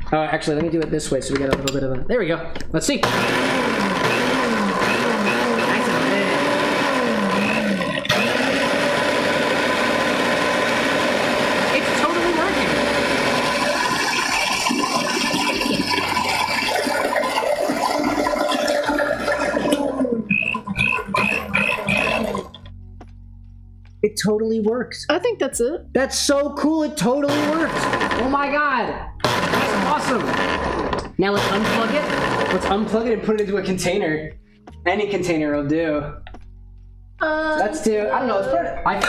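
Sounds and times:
blender motor running: 0:03.0 - 0:22.6, 0:27.2 - 0:32.9.

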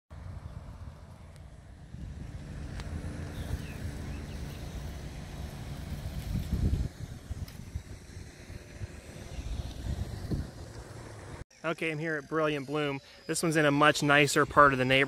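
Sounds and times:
road traffic rumble: 0:00.1 - 0:11.5.

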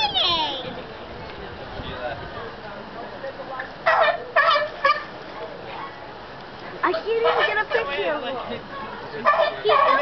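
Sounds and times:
sea lion barking: 0:07.2 - 0:08.0, 0:08.8 - 0:10.0.

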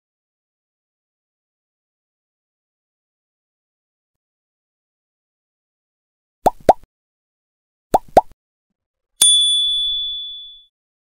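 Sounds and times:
bright bell ding: 0:09.2 - 0:10.7.

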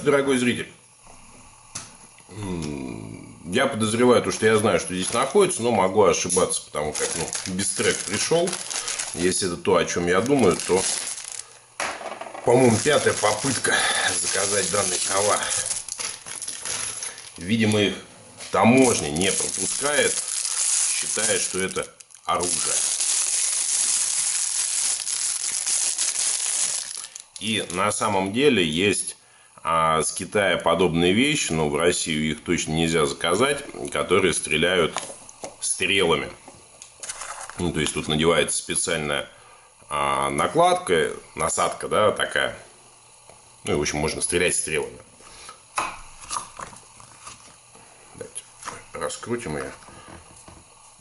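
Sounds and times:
plastic bag crinkling: 0:04.3 - 0:11.7, 0:12.4 - 0:28.0, 0:37.0 - 0:38.1.

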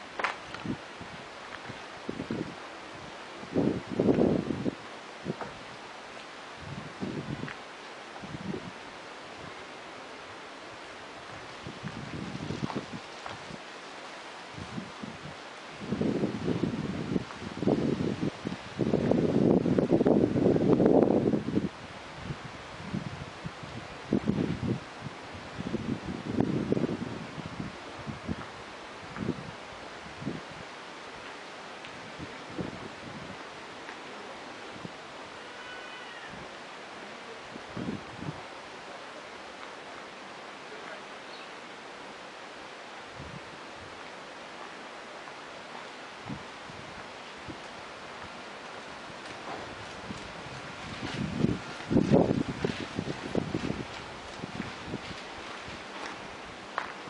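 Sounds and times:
wind buffeting microphone: 0:00.0 - 0:05.9, 0:06.5 - 0:09.6, 0:11.0 - 0:13.7, 0:14.4 - 0:31.2, 0:31.8 - 0:35.4, 0:37.4 - 0:38.5, 0:43.0 - 0:44.1, 0:46.1 - 0:57.0
outdoor hiss: 0:00.0 - 0:57.0.

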